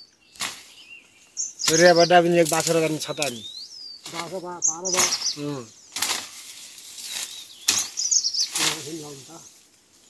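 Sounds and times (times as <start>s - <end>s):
leaves and bamboo rustling: 0.0s - 10.0s.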